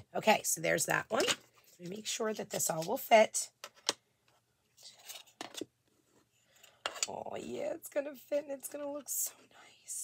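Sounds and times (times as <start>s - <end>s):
wooden cutouts scraping and tapping: 1.1s - 7.2s.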